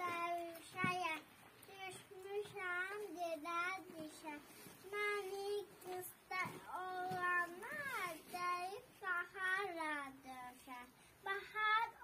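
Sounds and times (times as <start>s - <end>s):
child singing unaccompanied: 0.0s - 12.0s.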